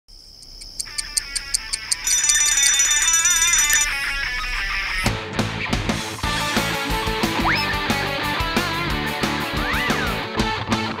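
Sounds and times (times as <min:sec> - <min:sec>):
alarm clock ticking: 0:00.6 - 0:04.0
alarm clock ringing: 0:01.3 - 0:04.4
high steady tone: 0:01.7 - 0:04.4.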